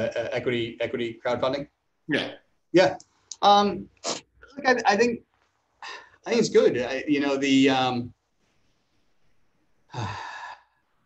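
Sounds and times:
man's sigh-like sound: 9.9s - 10.7s.

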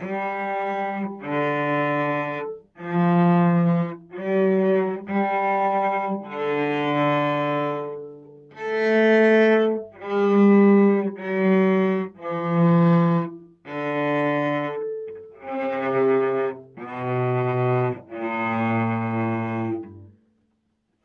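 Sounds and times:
cello bowed notes: 0.0s - 20.4s.

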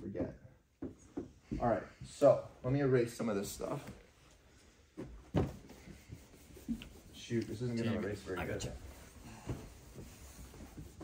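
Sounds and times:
eraser wiping whiteboard: 5.7s - 11.0s.

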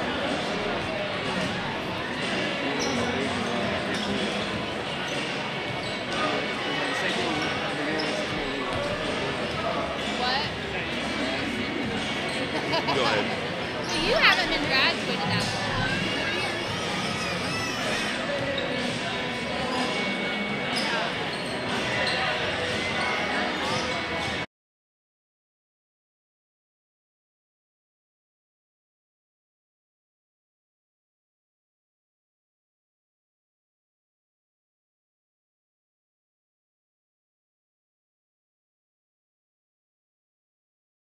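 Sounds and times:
echoing crowd chatter: 0.0s - 24.5s
shoe squeak: 2.8s - 3.2s, 5.0s - 9.6s, 13.8s - 24.4s.

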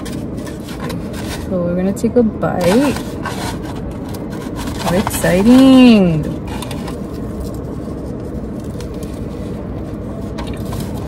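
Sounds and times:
foam boxes rubbing: 0.0s - 1.6s, 2.6s - 7.0s
low rumble inside car: 0.0s - 11.0s.

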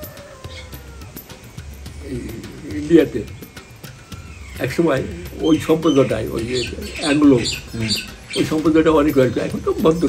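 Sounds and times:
faint birds calling: 0.0s - 10.0s
old man speaking: 4.6s - 10.0s.

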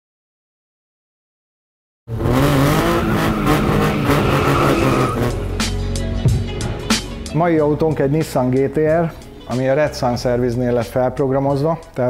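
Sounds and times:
tyres squealing: 2.7s - 5.4s
music: 3.9s - 12.0s.

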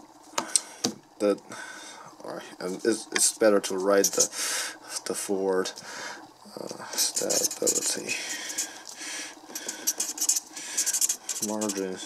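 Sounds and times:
felt-tip marker scratching paper: 3.9s - 4.3s, 6.9s - 8.7s, 9.6s - 12.0s.

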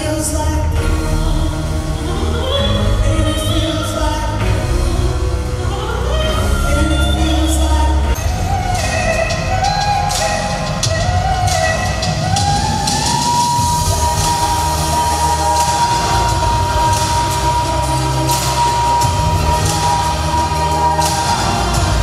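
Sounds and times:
live pop song: 0.0s - 22.0s
woman singing: 0.0s - 22.0s
steady beat: 0.1s - 22.0s.

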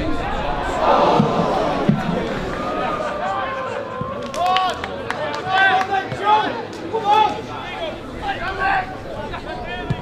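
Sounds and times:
low crowd murmur: 0.0s - 10.0s.

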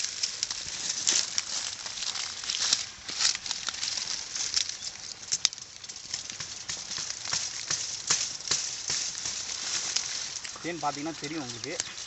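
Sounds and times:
leaves and twigs rustling: 0.0s - 12.0s.

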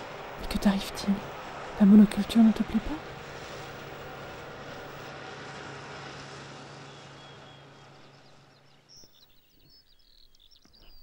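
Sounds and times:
tractor engine hum: 0.0s - 11.0s
high bird chirps: 6.9s - 11.0s.

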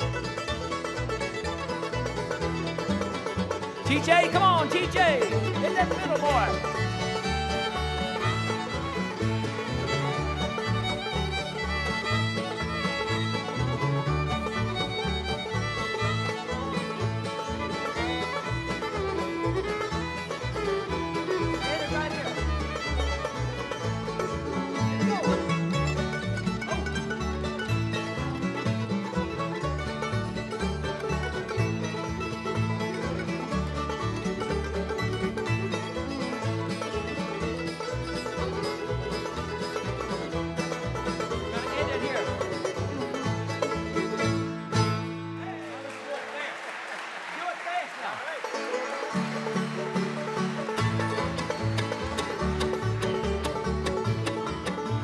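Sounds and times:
acoustic bluegrass band playing: 0.0s - 46.0s, 48.3s - 55.0s.

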